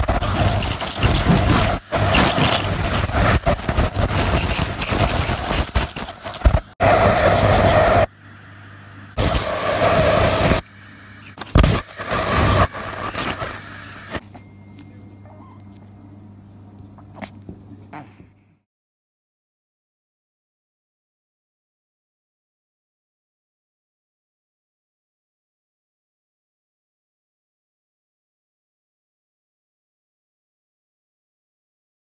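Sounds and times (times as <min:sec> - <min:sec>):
dental scaler whine: 0:00.0 - 0:15.9
water spray hiss: 0:00.2 - 0:14.2.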